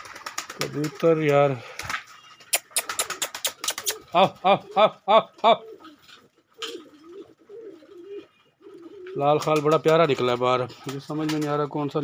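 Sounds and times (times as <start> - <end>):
pigeon cooing: 1.6 - 9.6
man calling: 2.5 - 5.9.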